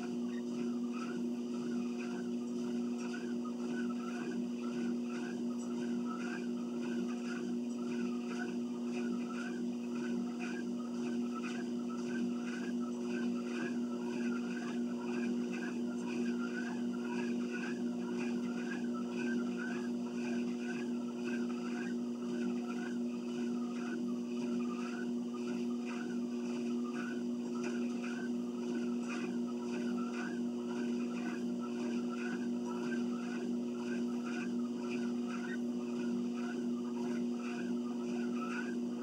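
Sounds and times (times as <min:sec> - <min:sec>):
rhythmic squeak: 0:00.0 - 0:39.0
treadmill motor hum: 0:00.0 - 0:39.0
person walking on treadmill: 0:25.9 - 0:39.0.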